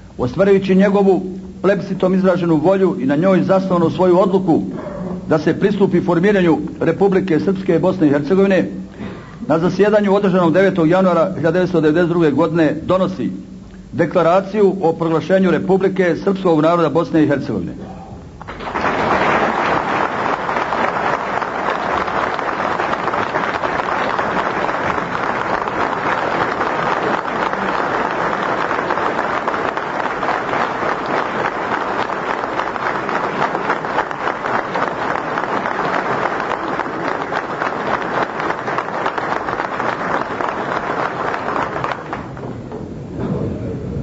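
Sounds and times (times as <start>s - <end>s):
crowd applauding: 18.4s - 42.6s.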